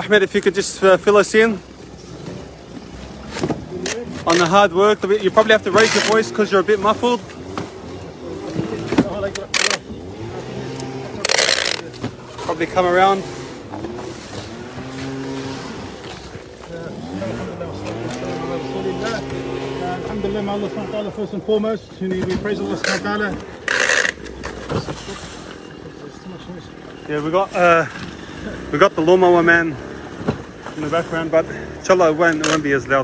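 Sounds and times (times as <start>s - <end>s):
lawnmower engine running: 1.7s - 21.6s.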